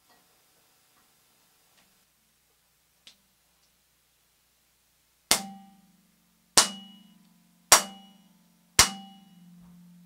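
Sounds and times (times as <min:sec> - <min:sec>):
prepared vibraphone strikes: 0:05.3 - 0:06.0, 0:06.6 - 0:10.0.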